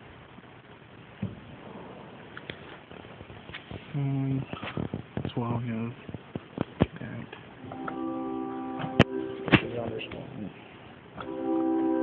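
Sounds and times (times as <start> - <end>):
pipe organ holding a chord: 7.7 - 10.2, 11.2 - 12.0.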